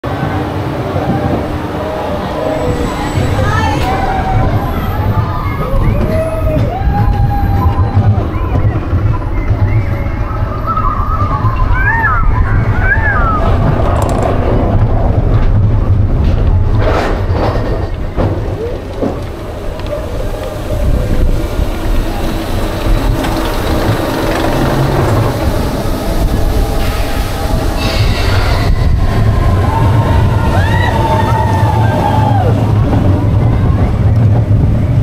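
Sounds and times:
roller coaster rumbling on track: 0:00.0 - 0:35.0.

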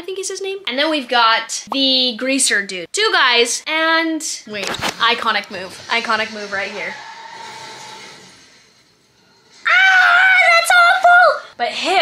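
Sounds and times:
woman screaming: 0:09.6 - 0:11.0.

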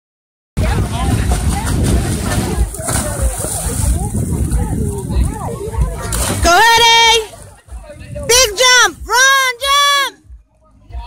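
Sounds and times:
wind buffeting microphone: 0:00.6 - 0:09.2
pool water splashing: 0:00.6 - 0:10.1.

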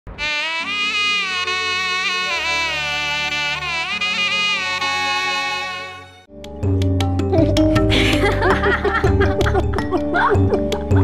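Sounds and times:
shehnai melody: 0:00.2 - 0:06.3.

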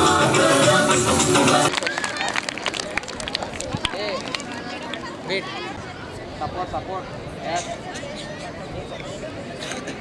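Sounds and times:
children chattering and calling: 0:03.7 - 0:10.0.

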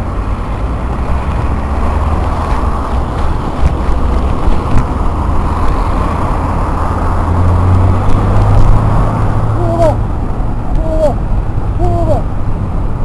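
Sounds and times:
car engines close by: 0:00.0 - 0:13.0
wind buffeting microphone: 0:00.0 - 0:13.0.

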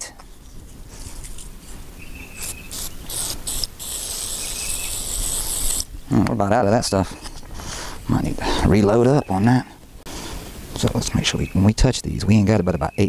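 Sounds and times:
aerosol spray hissing: 0:02.4 - 0:05.9.

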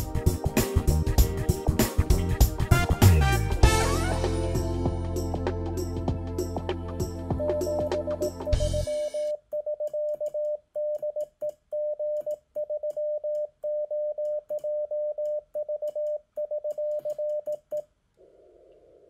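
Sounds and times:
morse code tone: 0:07.4 - 0:11.2.

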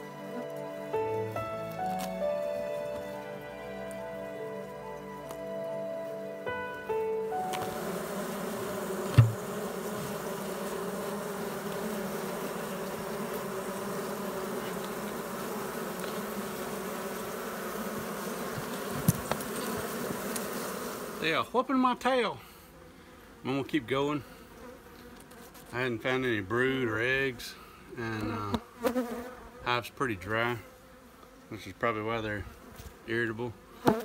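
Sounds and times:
background music: 0:00.0 - 0:09.0
honey bees buzzing: 0:00.0 - 0:34.0
sharp knock: 0:09.1 - 0:09.4.

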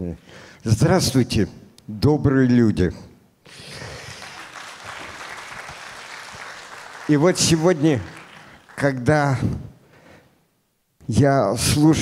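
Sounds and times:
audience applauding: 0:03.8 - 0:09.4.

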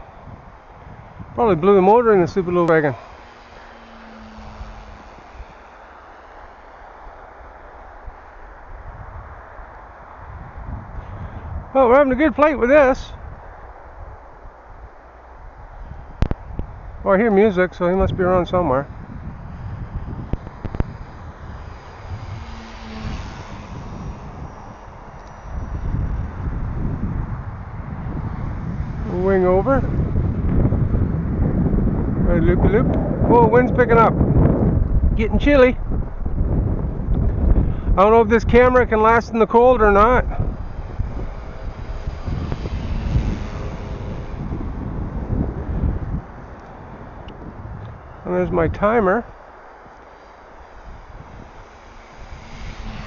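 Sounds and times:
model plane high whine: 0:00.0 - 0:53.0
wind buffeting microphone: 0:00.0 - 0:53.0.

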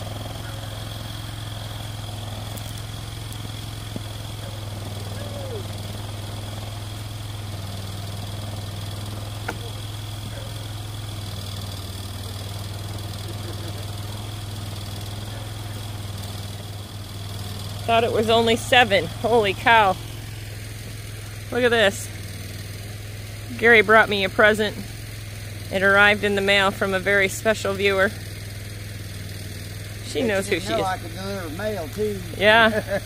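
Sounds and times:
atv engine idling: 0:00.0 - 0:33.0.

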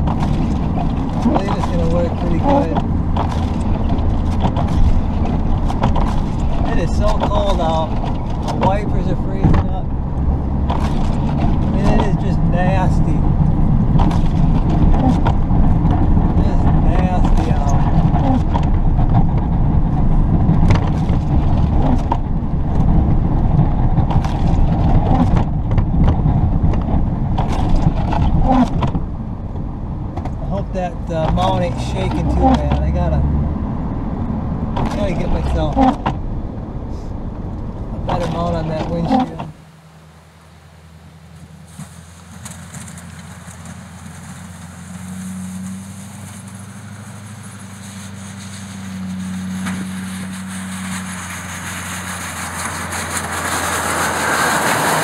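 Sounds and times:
truck and plow knocks and rattles: 0:00.0 - 0:36.5, 0:37.4 - 0:39.6, 0:41.2 - 0:55.0
diesel truck engine running: 0:28.4 - 0:55.0.

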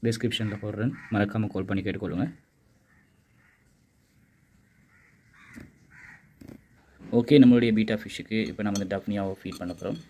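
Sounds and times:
faint bird calls: 0:02.7 - 0:07.1.

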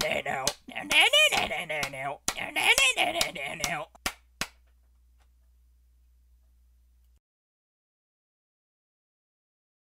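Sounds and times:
faint low hum: 0:00.0 - 0:07.2.

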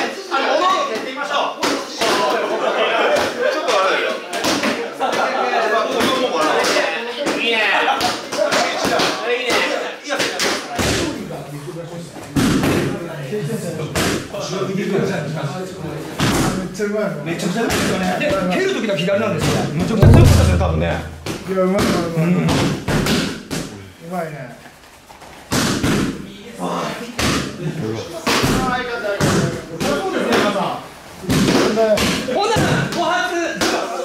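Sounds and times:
voices in gym: 0:00.0 - 0:20.0, 0:21.3 - 0:34.0
kicks thudding on pad: 0:20.0 - 0:21.4.

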